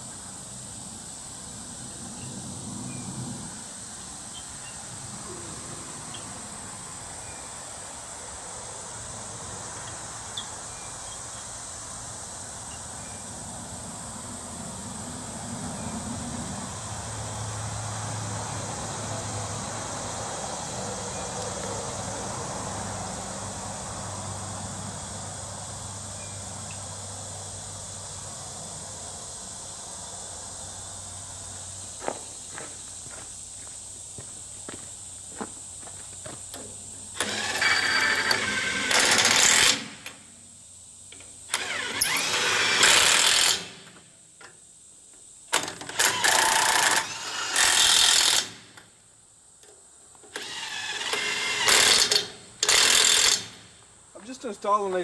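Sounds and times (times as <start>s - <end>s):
impact wrench bursts: 37.1s - 40.3s, 41.4s - 44.0s, 45.5s - 48.9s, 50.3s - 53.8s.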